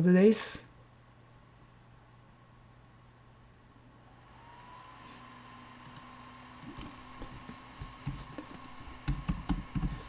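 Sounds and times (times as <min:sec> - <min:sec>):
faint steady hum: 0:00.0 - 0:10.0
thin whine: 0:04.0 - 0:07.2.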